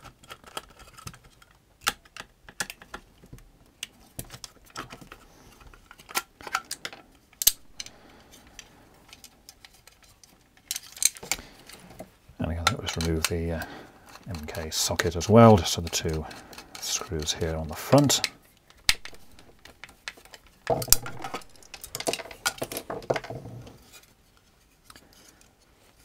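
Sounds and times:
plastic casing clicks and knocks: 0:18.8 - 0:23.7.

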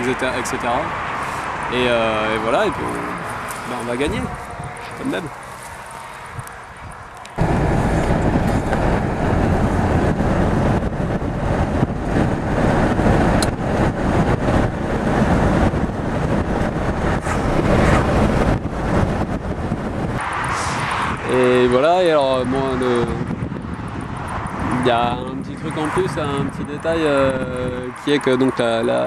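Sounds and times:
car road and engine noise: 0:00.0 - 0:29.0.

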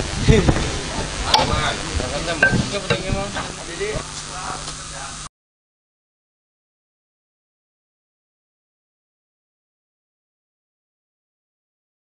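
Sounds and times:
people chattering: 0:00.0 - 0:05.3.

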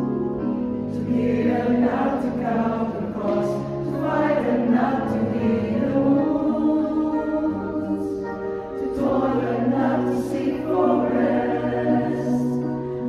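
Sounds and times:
choir singing a hymn: 0:00.0 - 0:13.0
sustained keyboard chords: 0:00.0 - 0:13.0.

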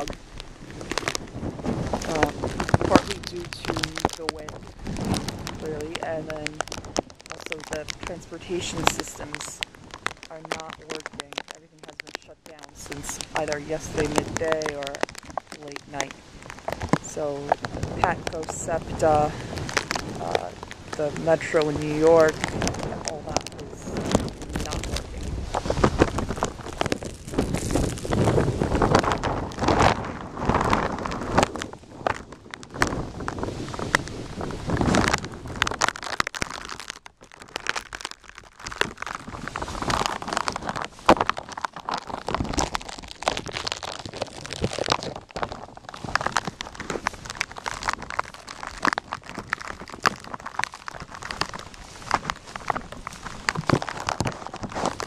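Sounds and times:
plastic bag crinkling on microphone: 0:00.0 - 0:55.0
wind buffeting microphone: 0:00.0 - 0:55.0.

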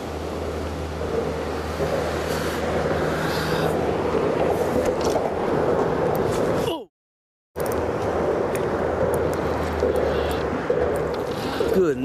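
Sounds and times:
motorboat droning past: 0:00.0 - 0:06.2.

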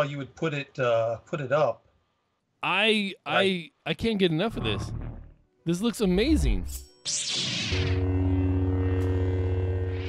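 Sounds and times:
lightsaber electric hum: 0:07.1 - 0:10.0.

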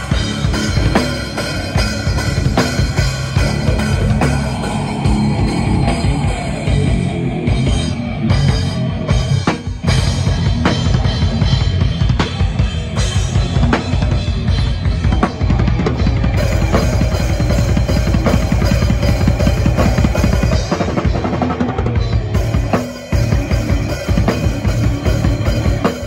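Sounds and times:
rapid bass drum strokes: 0:00.0 - 0:26.0.

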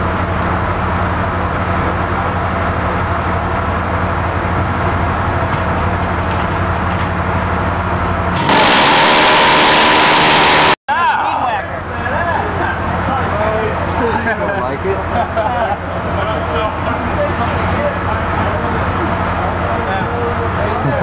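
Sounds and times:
machinery hum: 0:00.0 - 0:10.8
gatling gun firing burst: 0:08.4 - 0:10.8.

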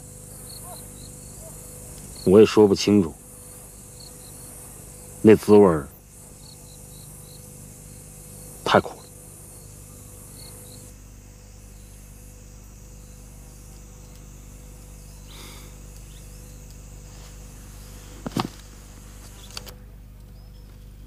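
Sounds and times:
crickets chirping: 0:00.0 - 0:21.0.

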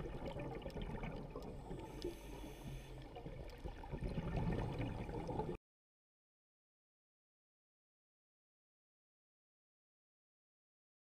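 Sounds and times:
muffled underwater rush: 0:00.0 - 0:05.6.

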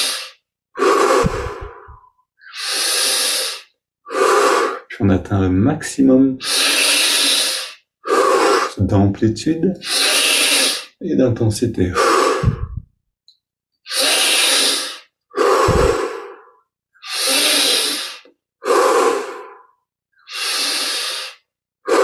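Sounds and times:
man breathing forcefully: 0:00.0 - 0:04.9, 0:06.4 - 0:08.8, 0:11.9 - 0:12.9, 0:13.9 - 0:22.0.

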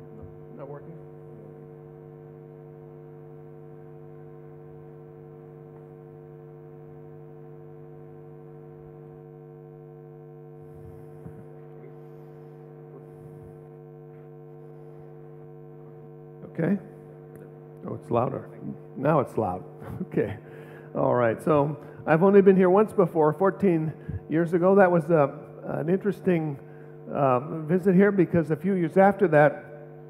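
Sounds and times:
electrical mains hum: 0:00.0 - 0:30.0
faint microphone handling bumps: 0:10.7 - 0:11.5.

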